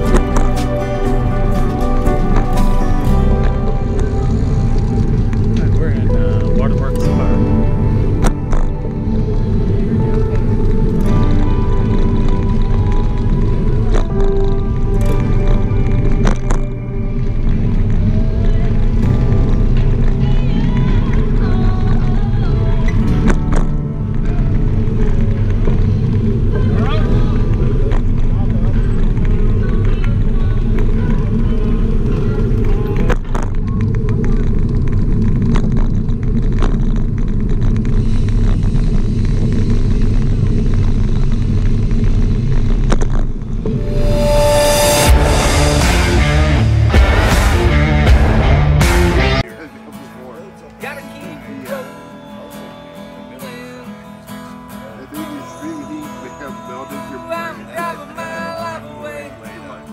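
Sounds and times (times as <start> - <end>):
music with singing voice: 0.0 - 33.9, 43.7 - 59.9
heavy low bass: 0.0 - 49.5.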